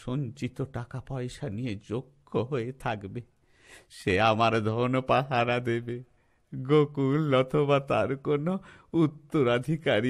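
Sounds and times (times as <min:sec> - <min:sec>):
sharp intake of breath: 0:03.4 - 0:03.9.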